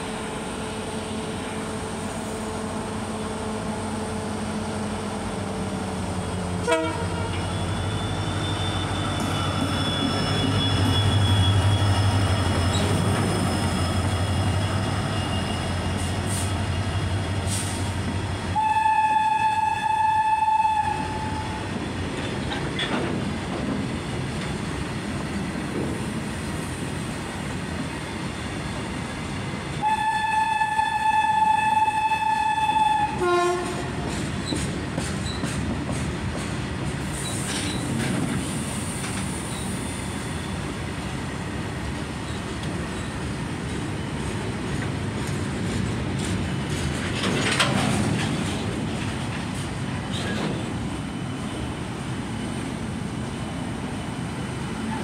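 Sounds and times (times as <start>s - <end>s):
train rumble and wheel clatter: 0.0s - 55.0s
train horn blasts: 6.6s - 7.4s, 18.5s - 21.5s, 29.8s - 34.0s.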